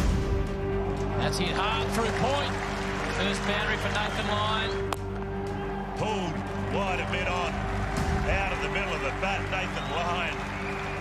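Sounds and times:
background music with low tones: 0.0s - 11.0s.

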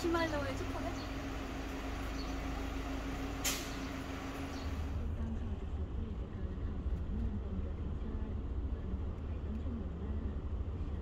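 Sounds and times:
low mechanical hum: 0.0s - 11.0s
short sharp hiss: 3.4s - 4.0s.

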